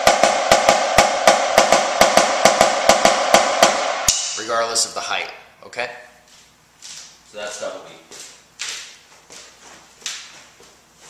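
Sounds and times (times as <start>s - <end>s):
snare drum double strokes: 0.0s - 4.6s.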